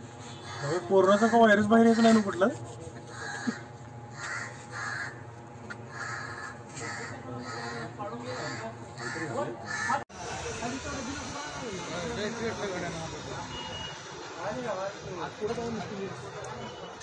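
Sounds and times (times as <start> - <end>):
distant voices: 0.0 - 15.4
crows cawing: 0.3 - 2.4, 3.0 - 10.0.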